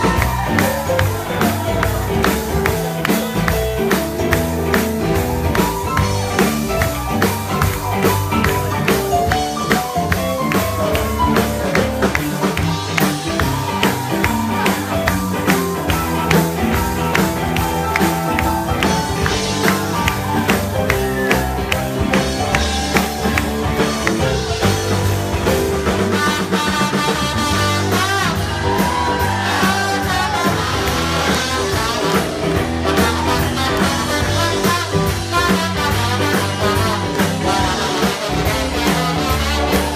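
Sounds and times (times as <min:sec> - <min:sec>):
live band playing up-tempo music: 0:00.0 - 0:39.9.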